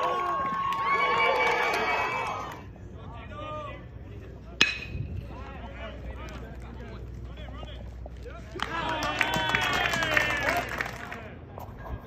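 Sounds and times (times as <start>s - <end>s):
crowd yelling: 0.0s - 2.7s, 8.4s - 11.1s
bat hitting ball crack: 4.6s - 5.1s.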